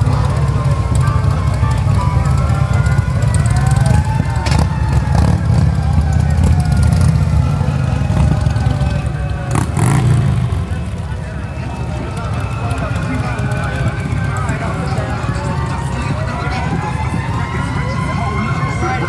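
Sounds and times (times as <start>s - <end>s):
sirens wailing: 0.0s - 19.0s
vehicles rumbling past: 0.0s - 19.0s.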